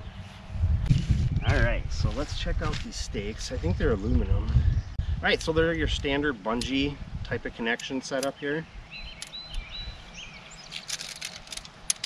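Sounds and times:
birds chirping: 0:00.0 - 0:02.1, 0:02.9 - 0:12.0
low outdoor rumble: 0:00.0 - 0:12.0.

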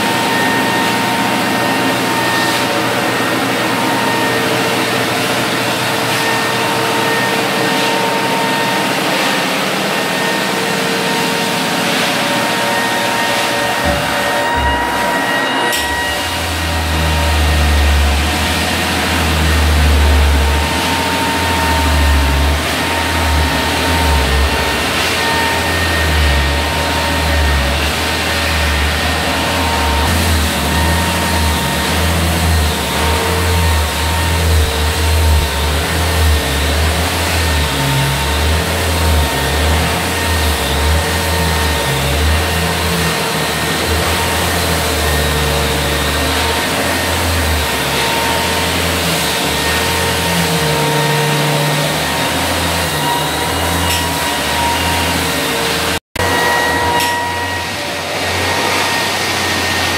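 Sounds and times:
floor sander motor hum: 0:00.0 - 0:59.9.

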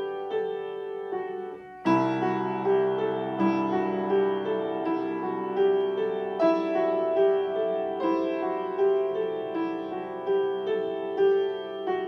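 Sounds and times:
slow piano melody: 0:00.0 - 0:12.0.

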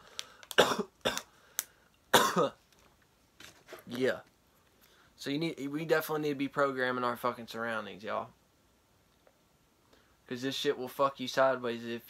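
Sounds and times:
person coughing: 0:00.6 - 0:01.3, 0:02.1 - 0:02.6.

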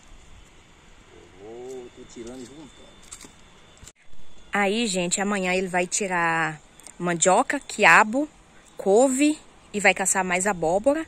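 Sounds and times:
distant voice speaking: 0:01.2 - 0:02.8.

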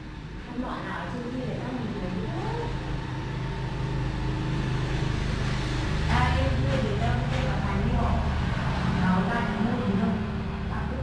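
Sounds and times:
low machine hum: 0:00.0 - 0:11.0
person's voice: 0:00.5 - 0:02.8.

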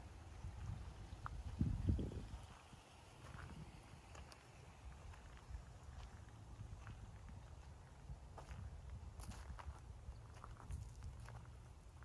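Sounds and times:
footsteps crunching on gravel: 0:00.6 - 0:12.0.

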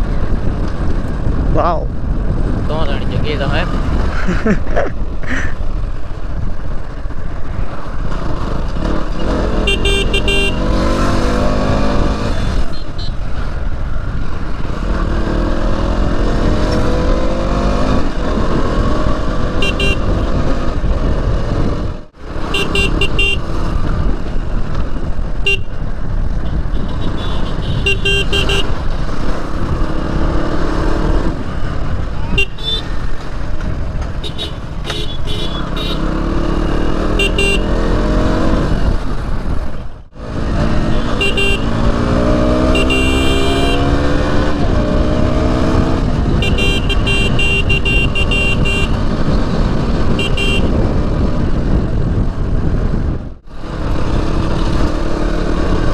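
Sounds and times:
wind and road noise: 0:00.0 - 0:55.9
motorcycle engine revving: 0:05.8 - 0:55.9
vehicle horn beeps: 0:09.6 - 0:10.6, 0:19.6 - 0:20.2, 0:22.5 - 0:23.4, 0:25.5 - 0:25.7, 0:26.7 - 0:28.7, 0:32.3 - 0:33.0, 0:34.2 - 0:36.0, 0:36.8 - 0:37.7, 0:40.9 - 0:41.7, 0:42.6 - 0:43.9, 0:46.4 - 0:49.0, 0:50.2 - 0:50.8.

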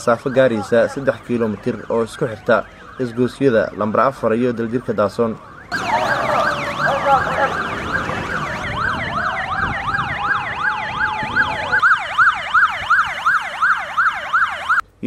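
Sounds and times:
second siren rising slowly: 0:00.0 - 0:14.8
siren fast yelp: 0:00.0 - 0:14.8.

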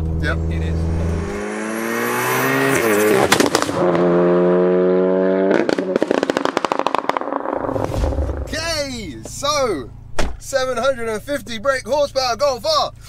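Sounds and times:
car engine accelerating hard: 0:00.0 - 0:09.7
exhaust pops and crackles: 0:03.2 - 0:03.9, 0:05.5 - 0:09.5.

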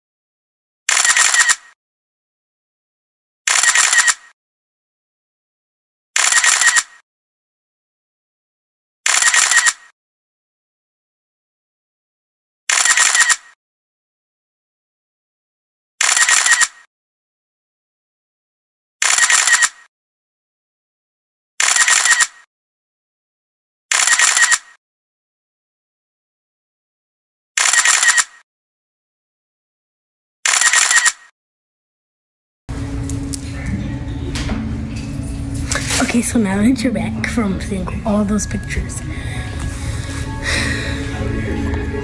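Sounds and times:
camera shutter clicks: 0:00.9 - 0:01.8, 0:03.5 - 0:04.3, 0:06.2 - 0:07.0, 0:09.1 - 0:09.9, 0:12.7 - 0:13.6, 0:16.0 - 0:16.8, 0:19.0 - 0:19.9, 0:21.6 - 0:22.4, 0:23.9 - 0:24.8, 0:27.6 - 0:28.4, 0:30.4 - 0:31.3.

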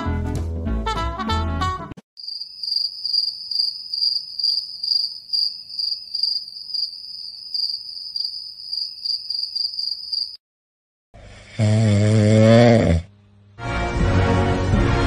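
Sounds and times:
crickets chirping: 0:02.2 - 0:10.4.

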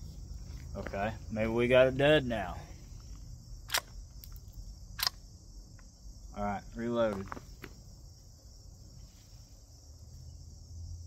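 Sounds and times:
insects droning: 0:00.0 - 0:11.0
rifle reloading clicks: 0:03.7 - 0:04.4, 0:05.0 - 0:05.2.

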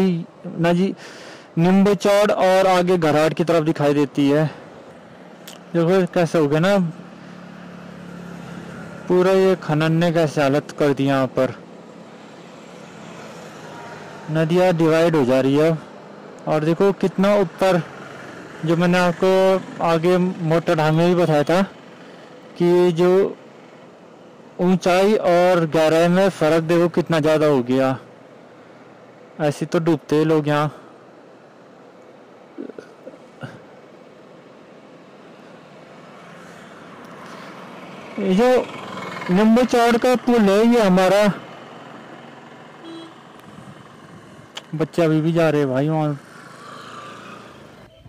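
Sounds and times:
outdoor background hiss: 0:00.0 - 0:48.0
vehicles passing on a bridge: 0:00.0 - 0:48.0.

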